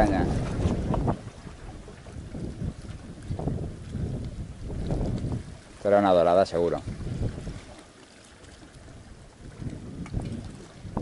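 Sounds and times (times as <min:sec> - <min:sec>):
wind buffeting microphone: 0:00.0 - 0:07.8, 0:08.6 - 0:11.0
sea washing against rocks: 0:00.0 - 0:11.0.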